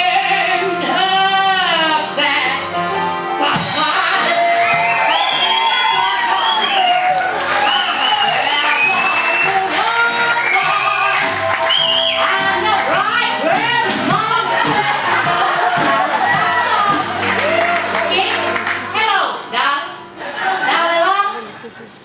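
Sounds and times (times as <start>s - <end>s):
musical accompaniment: 0.0s - 22.0s
audience cheering and applauding: 3.9s - 19.0s.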